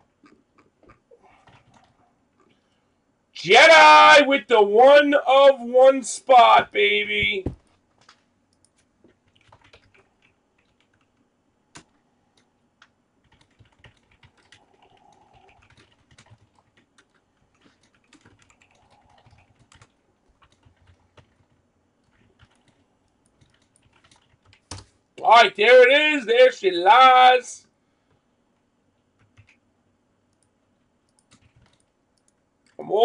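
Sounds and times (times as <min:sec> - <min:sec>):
typing on computer keyboard: 0:01.4 - 0:02.0, 0:09.1 - 0:24.9, 0:29.2 - 0:29.6, 0:31.1 - 0:32.4.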